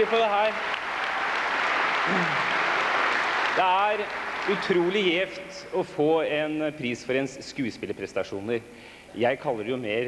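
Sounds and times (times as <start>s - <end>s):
audience applauding: 0.0s - 5.1s.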